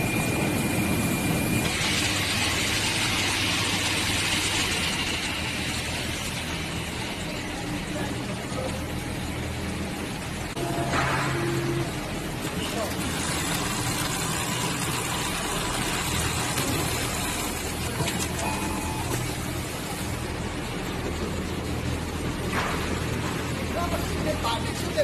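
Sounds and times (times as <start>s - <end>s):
sewing machine running: 1.6s - 7.4s, 11.7s - 20.2s.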